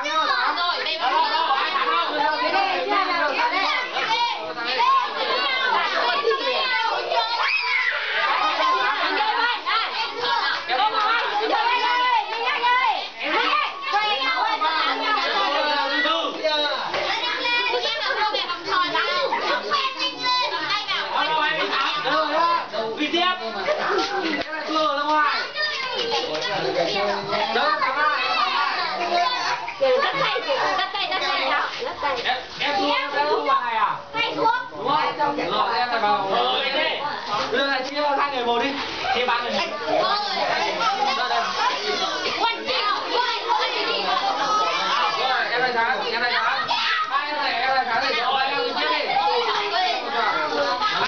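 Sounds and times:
children chattering and calling out: 0.0s - 51.0s.

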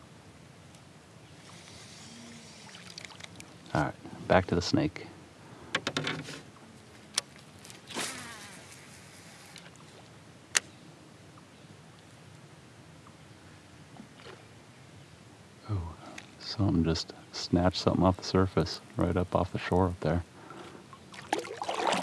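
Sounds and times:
fishing reel spool whirring: 1.4s - 3.5s, 7.6s - 9.9s.

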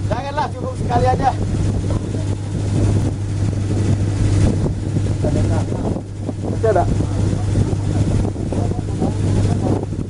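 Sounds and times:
boat motor humming: 0.0s - 10.0s
wind rumbling on microphone: 0.0s - 10.0s.

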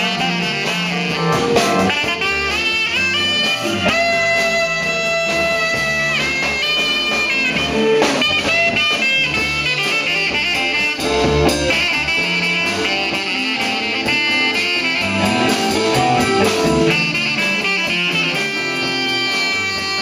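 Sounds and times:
blues-rock band playing: 0.0s - 20.0s
saxophone long held notes: 0.0s - 20.0s.

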